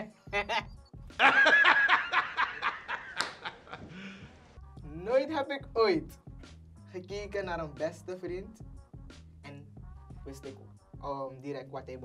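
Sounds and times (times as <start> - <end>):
man laughing heartily: 1.2 - 4.2.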